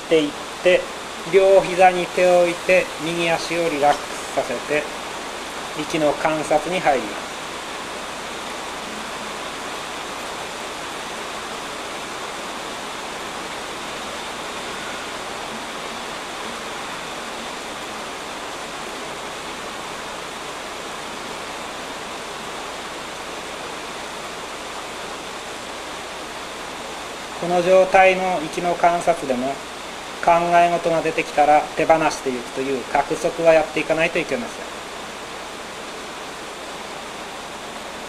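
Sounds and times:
steady rain: 0.0 - 38.0.

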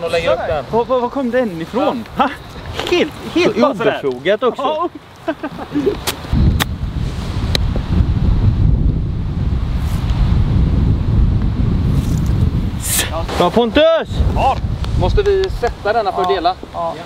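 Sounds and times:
wind buffeting microphone: 5.0 - 17.0.

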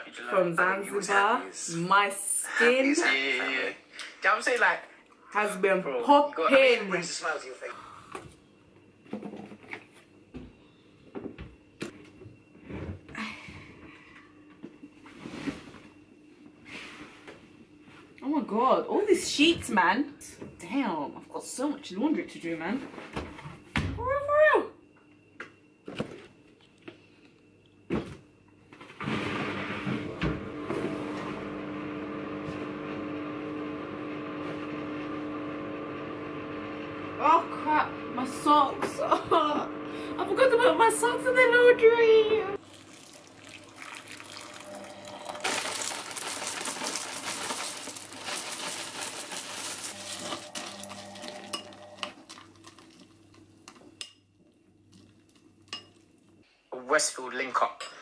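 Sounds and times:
washing machine humming: 28.0 - 56.4.

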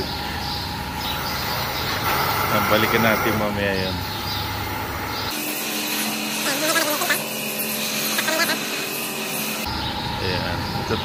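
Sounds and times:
milking machinery running: 0.0 - 11.0.

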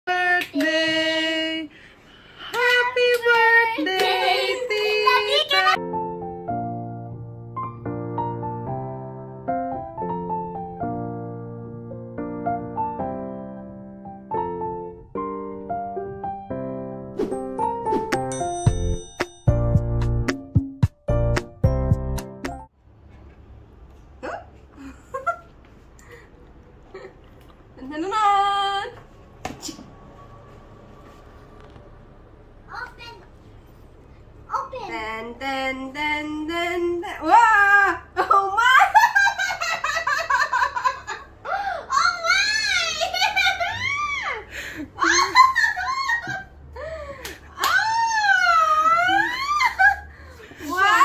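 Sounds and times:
person squealing and giggling: 42.9 - 46.2, 47.7 - 50.0.

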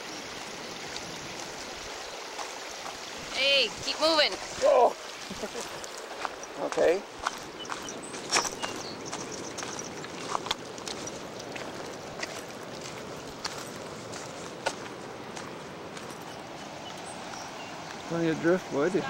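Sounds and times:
footsteps on stony path: 0.9 - 3.1, 5.2 - 18.1.

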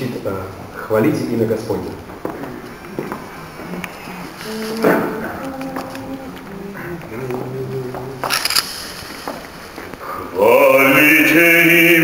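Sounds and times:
men singing held notes: 3.4 - 8.4.

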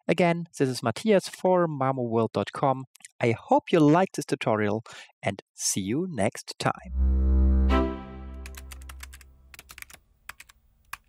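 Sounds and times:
sustained musical tone: 6.9 - 9.0
keyboard key clicks: 8.4 - 11.0.

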